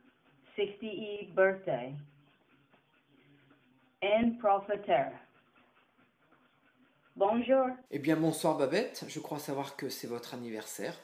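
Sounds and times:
woman's voice: 0.6s - 2.0s, 4.0s - 5.2s, 7.2s - 7.9s.

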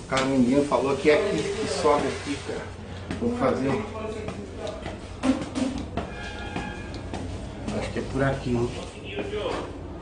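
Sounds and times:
footsteps on concrete stairs: 2.9s - 8.4s.

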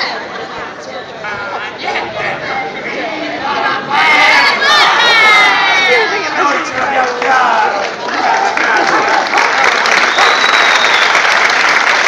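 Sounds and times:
people crying out shrilly: 3.5s - 6.2s.

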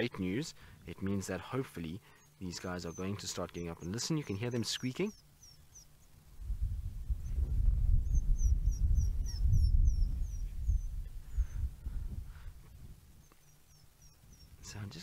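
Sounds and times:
wild dogs chirping: 2.0s - 6.2s, 8.0s - 11.7s, 13.2s - 15.0s.

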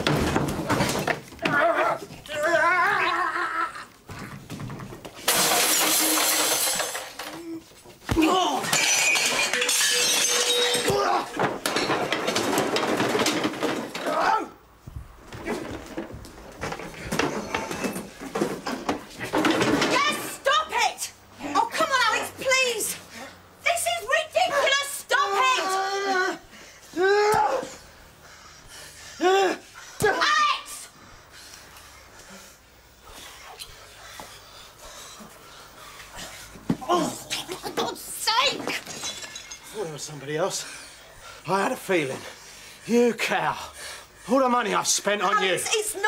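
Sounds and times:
loud vocal cry: 1.4s - 4.0s, 10.8s - 11.5s, 14.0s - 14.6s, 24.4s - 27.8s
glass shattering: 5.3s - 7.4s, 8.5s - 14.1s, 38.5s - 40.2s
men grunting: 24.5s - 27.8s, 29.2s - 30.2s, 36.7s - 38.0s
heavy breathing: 27.8s - 30.0s, 30.9s - 36.7s, 43.6s - 44.4s.

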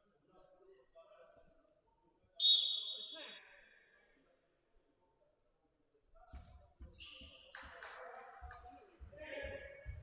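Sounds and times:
referee's whistle blowing: 2.4s - 3.4s.

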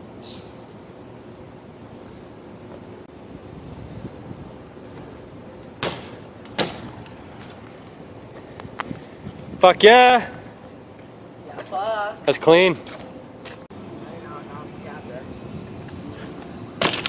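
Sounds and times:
outdoor background noise: 0.0s - 17.0s
bike wheels landing on pavement: 5.7s - 7.6s, 16.8s - 17.0s.

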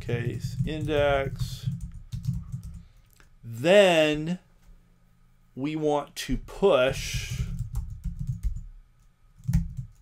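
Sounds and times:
typing on computer keyboard: 0.2s - 2.9s, 7.3s - 8.7s, 9.4s - 10.0s.

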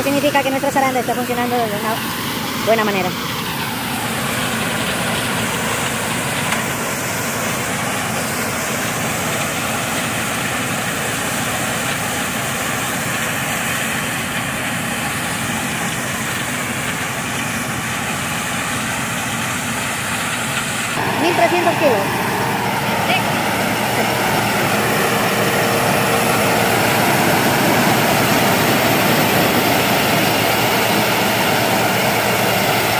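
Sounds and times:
combine harvester running: 0.0s - 32.9s.

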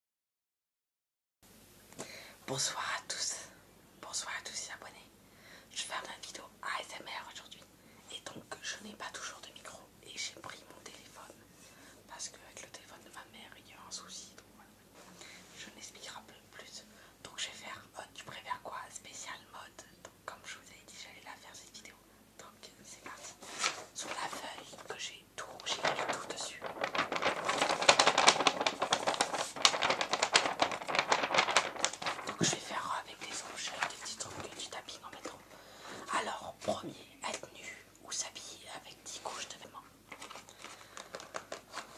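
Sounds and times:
man whispering: 2.4s - 5.1s, 15.6s - 23.4s, 32.2s - 35.4s, 36.0s - 39.9s.

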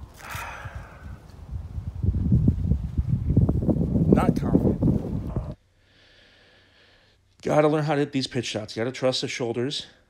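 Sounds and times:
wind rumbling on microphone: 0.0s - 5.6s.

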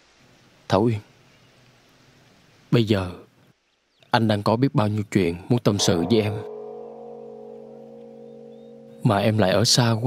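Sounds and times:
sustained chord of soft music: 5.8s - 9.9s.

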